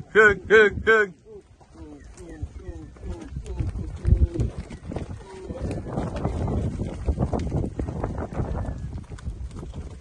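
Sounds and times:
man calling to cattle: 0.0 - 4.6
hooves thudding on dirt: 1.3 - 10.0.

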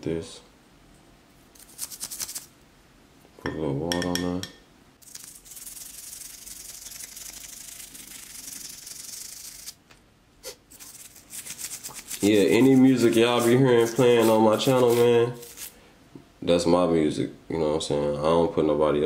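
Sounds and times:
toothbrush scrubbing metal: 1.6 - 2.5, 5.0 - 9.8, 10.7 - 15.7.

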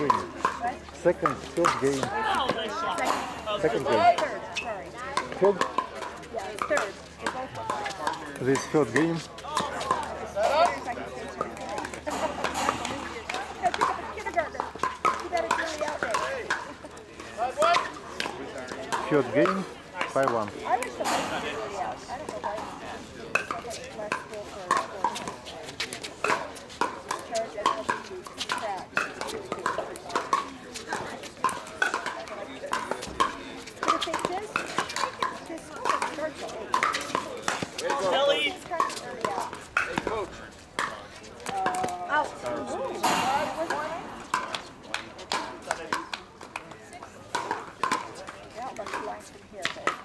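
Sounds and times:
ball bouncing on hard court: 43.0 - 46.7.

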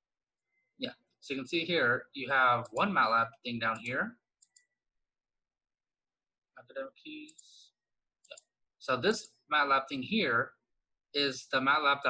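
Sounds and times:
computer mouse click: 3.6 - 4.8, 8.2 - 9.4.

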